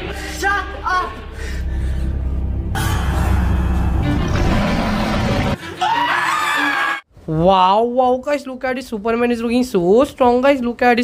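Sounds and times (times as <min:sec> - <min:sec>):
tense background music: 0:00.0 - 0:05.8
person screaming: 0:05.7 - 0:07.0.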